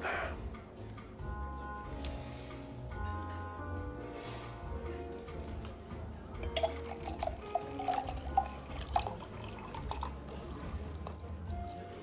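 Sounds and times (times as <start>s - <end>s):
background music: 0.0s - 12.0s
wine glugging into glass: 6.4s - 11.2s.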